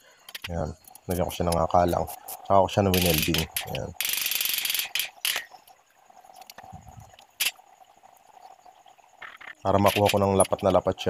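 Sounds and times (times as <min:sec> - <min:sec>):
sharp metallic clicks: 0:00.2 - 0:05.6, 0:09.2 - 0:10.8
welding arc crackling: 0:00.3 - 0:05.6.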